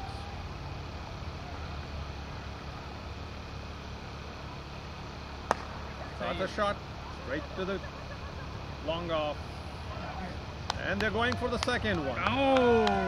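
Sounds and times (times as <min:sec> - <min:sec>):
low background hum: 0:00.0 - 0:13.0
cricket bat hitting ball: 0:05.5 - 0:06.0.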